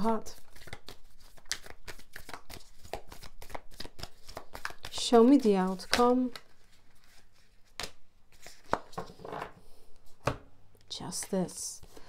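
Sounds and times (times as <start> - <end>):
cards sliding rustle: 0.4 - 9.3.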